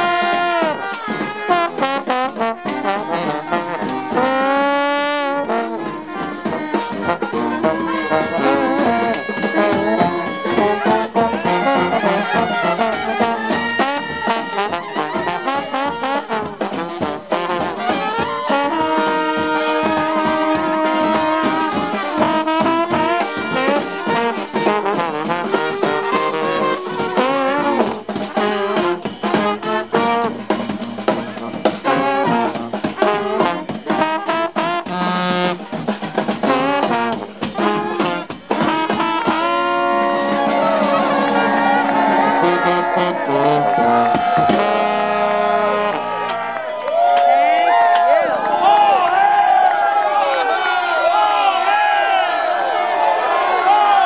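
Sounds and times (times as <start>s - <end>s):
trombones playing: 0.0s - 47.0s, 47.6s - 54.0s
trumpets playing: 0.0s - 54.0s
drum hits: 35.7s - 45.2s
sousaphone playing: 39.0s - 46.3s.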